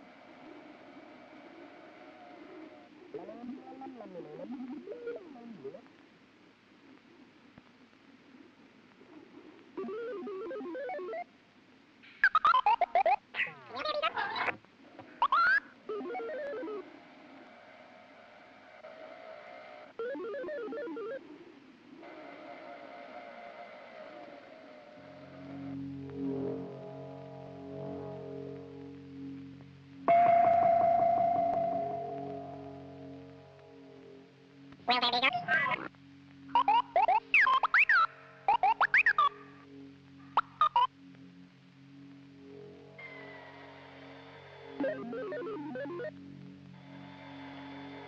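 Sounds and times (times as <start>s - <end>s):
steady electronic drone: 22.0s - 34.9s
low electronic hum: 24.2s - 48.0s
fast beeping electronic notes: 44.8s - 46.1s.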